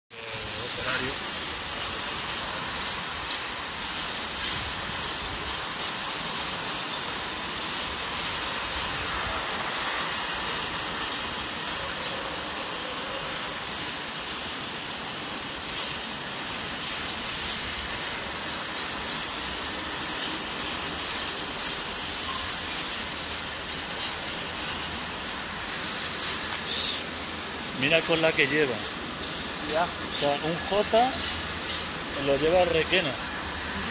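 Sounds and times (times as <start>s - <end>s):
train rumbling on tracks: 0.1s - 33.9s.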